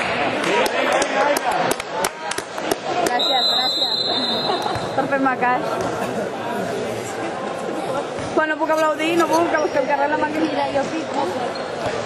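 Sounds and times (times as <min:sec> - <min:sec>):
referee's whistle blast: 0:03.2 - 0:04.6.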